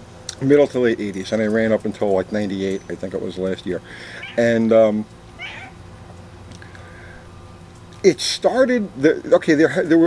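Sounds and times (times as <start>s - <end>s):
faint animal call: 4.0s - 4.6s, 5.4s - 5.8s.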